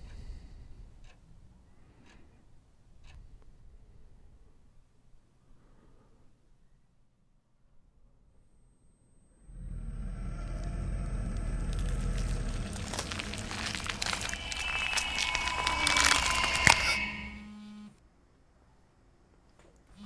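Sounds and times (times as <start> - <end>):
low drone: 9.3 - 17.6
crackling noise: 9.5 - 17.6
high held tones: 11.8 - 17.8.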